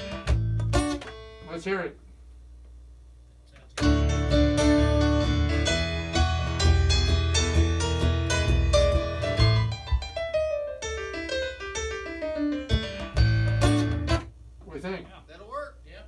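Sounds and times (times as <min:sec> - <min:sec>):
piano song playback: 0:03.8 - 0:14.3.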